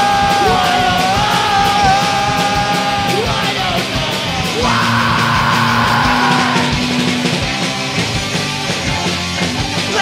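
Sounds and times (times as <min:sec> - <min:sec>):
distorted electric guitar: 0:00.0 - 0:10.0
drum kit with cymbals: 0:00.0 - 0:10.0.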